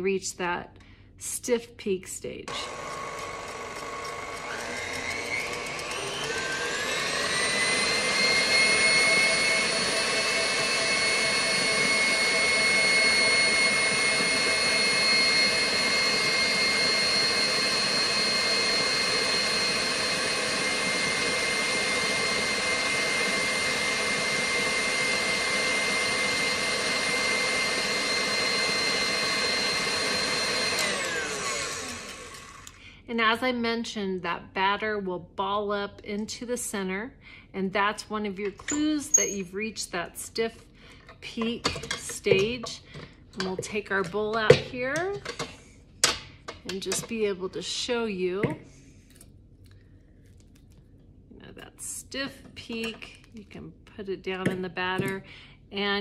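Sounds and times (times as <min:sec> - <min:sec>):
stand mixer motor whine: 0:02.6 - 0:32.8.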